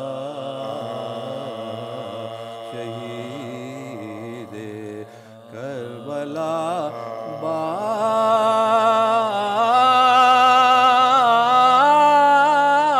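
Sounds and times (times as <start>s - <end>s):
man chanting lament: 0.0s - 12.9s.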